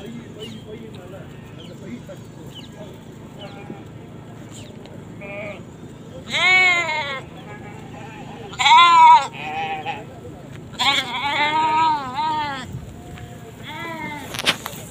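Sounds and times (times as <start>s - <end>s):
goats bleating: 3.3s - 14.9s.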